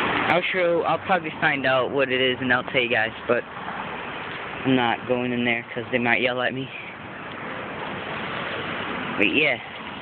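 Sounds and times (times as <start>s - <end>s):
street noise rushing hiss: 0.0s - 10.0s.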